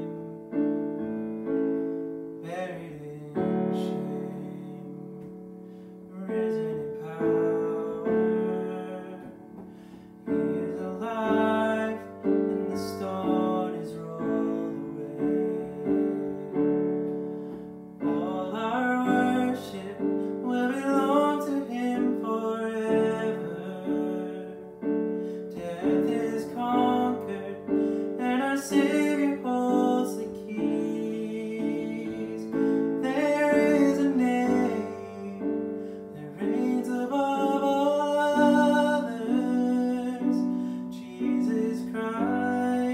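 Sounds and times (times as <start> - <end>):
man singing: 0.0 - 1.4, 2.4 - 5.4, 6.0 - 42.9
piano playing sustained chords: 0.0 - 42.9.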